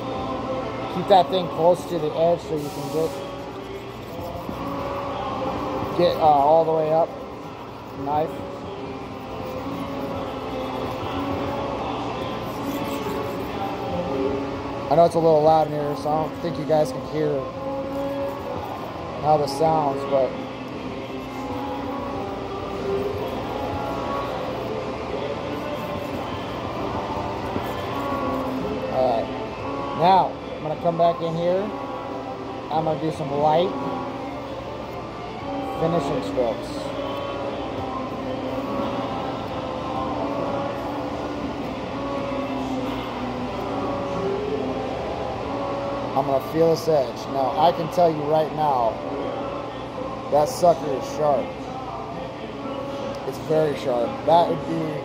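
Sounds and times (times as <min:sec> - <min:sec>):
background din with music-like tones: 0:00.0 - 0:55.0
knife stroked on whetstone: 0:02.4 - 0:08.4, 0:09.2 - 0:13.9, 0:25.4 - 0:28.7.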